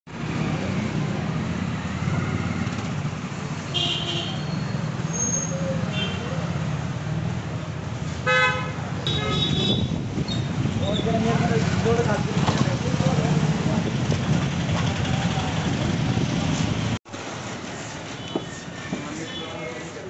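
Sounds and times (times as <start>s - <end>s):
traffic rumble: 0.1s - 20.0s
vehicle horns honking: 3.7s - 4.6s, 8.2s - 10.0s.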